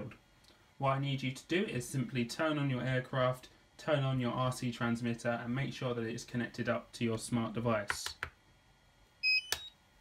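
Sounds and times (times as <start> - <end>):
electronic power-on beep: 9.2 - 9.8.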